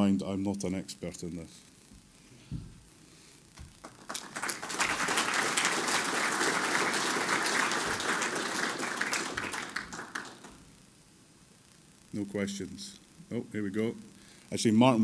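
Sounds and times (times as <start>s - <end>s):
audience applauding: 3.8s - 10.6s.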